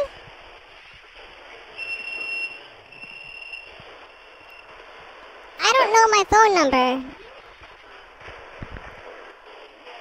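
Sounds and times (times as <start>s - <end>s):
telephone line hiss: 0.0s - 8.8s.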